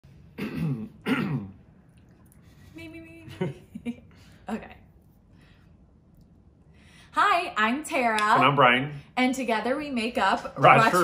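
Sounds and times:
person clearing throat: 0.4 - 1.6.

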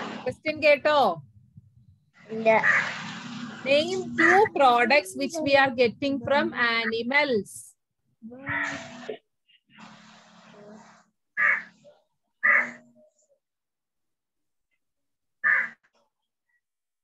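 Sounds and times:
bird harsh calls: 2.2 - 4.6, 9.8 - 11.8, 12.4 - 12.9, 15.4 - 15.8.

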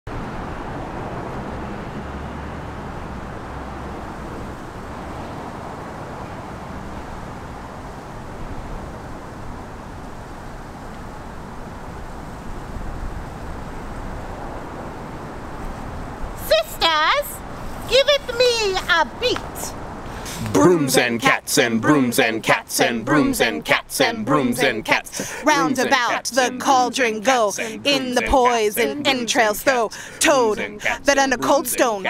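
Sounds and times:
distant traffic rumble: 0.1 - 32.0.

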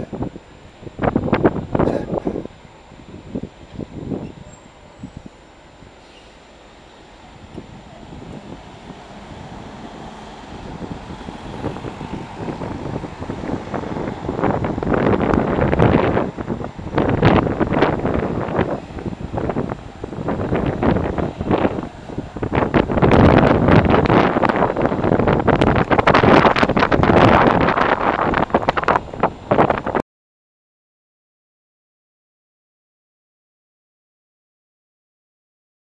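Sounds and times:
wind buffeting on microphone: 0.0 - 6.0, 7.2 - 30.0
road traffic and buses passing: 0.0 - 30.0.

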